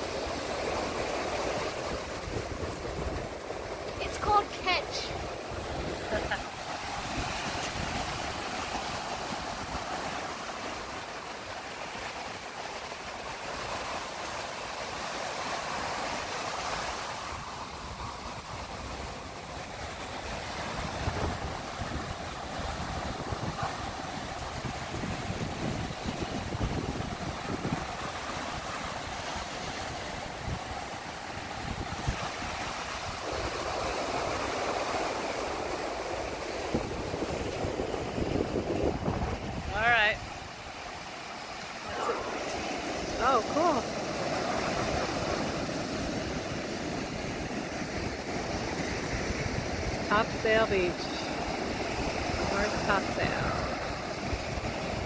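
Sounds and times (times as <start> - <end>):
ocean surf breaking: 0.0 - 55.0
wind buffeting microphone: 17.2 - 34.6, 35.4 - 40.8.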